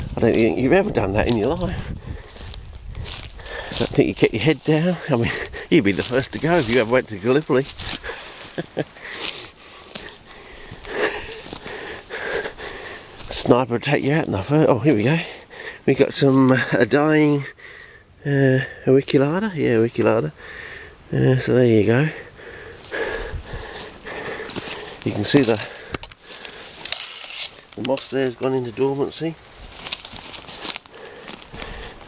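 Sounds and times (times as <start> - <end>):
footsteps through dry scrub: 0.0 - 17.6, 22.2 - 32.0
twigs and leaves crackling: 0.0 - 17.6, 22.2 - 32.0
person breathing through nose: 1.8 - 3.8, 7.8 - 13.3, 17.6 - 18.1, 20.4 - 21.0, 22.2 - 26.9, 30.5 - 32.0.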